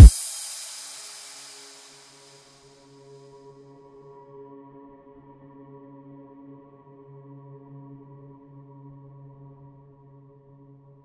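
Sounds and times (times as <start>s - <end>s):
reverb tail of drum hit: 0.0s - 2.0s.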